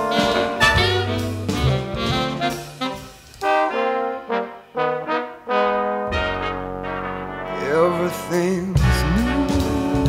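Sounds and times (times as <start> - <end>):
brass section playing short chords: 0.0 - 9.9.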